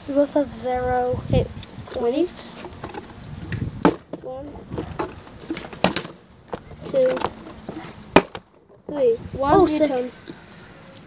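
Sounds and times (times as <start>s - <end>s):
child talking quietly: 9.0s - 10.2s.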